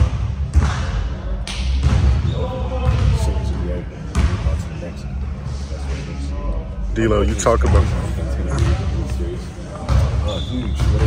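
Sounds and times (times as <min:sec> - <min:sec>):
basketballs bouncing on court: 0:00.0 - 0:04.6, 0:07.6 - 0:09.0, 0:09.7 - 0:11.0.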